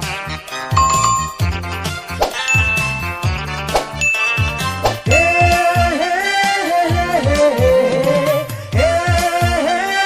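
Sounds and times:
bell-like ding: 0.8s - 1.6s, 2.5s - 3.4s, 4.0s - 5.9s.

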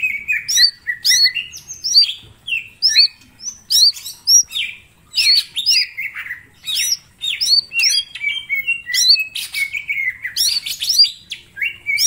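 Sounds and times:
bird singing whistled song: 0.0s - 12.0s.

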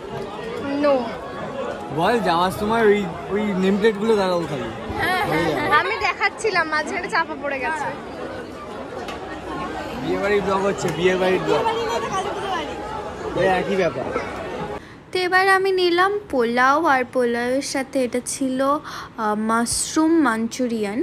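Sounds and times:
people talking in a crowd: 0.0s - 21.0s.

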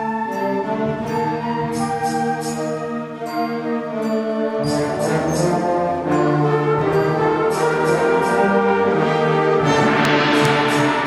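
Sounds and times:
concert band brass chords: 4.6s - 11.0s
cymbal crash: 9.6s - 11.0s.

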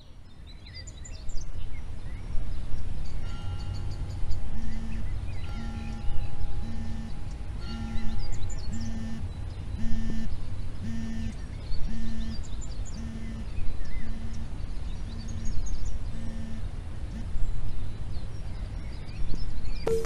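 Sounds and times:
birds chirping and trilling: 0.3s - 20.0s
low tone beeping: 3.3s - 17.3s.

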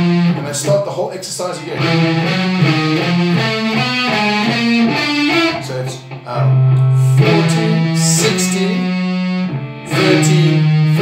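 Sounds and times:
electric guitar single notes: 0.0s - 11.0s.

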